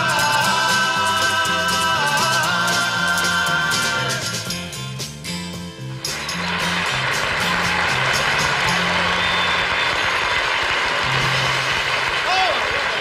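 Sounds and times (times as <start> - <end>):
band playing pop-rock song: 0.0 - 10.2
electric bass notes: 0.0 - 12.2
audience applauding: 6.1 - 13.0.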